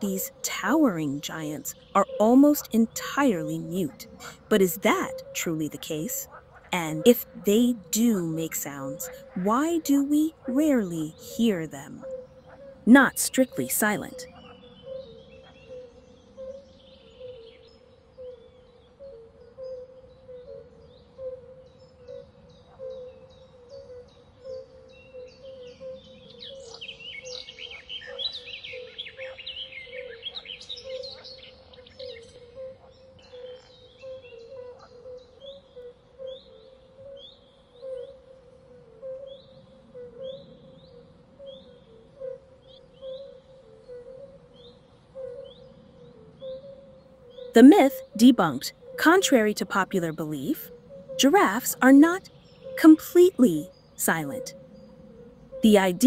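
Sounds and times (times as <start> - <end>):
birds chirping: 0.0 - 15.0, 46.4 - 56.0.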